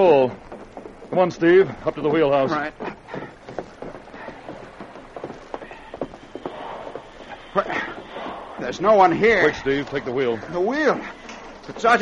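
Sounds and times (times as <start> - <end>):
hurried footsteps: 0.0 - 12.0
steady hiss: 0.0 - 12.0.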